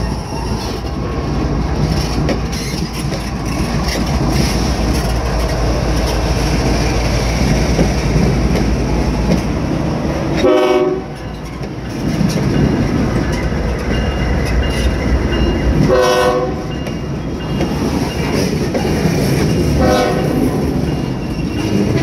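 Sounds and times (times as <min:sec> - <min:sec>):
diesel locomotive rumble: 0:00.0 - 0:22.0
locomotive horn blast: 0:10.4 - 0:11.2, 0:15.9 - 0:16.7, 0:19.8 - 0:20.4.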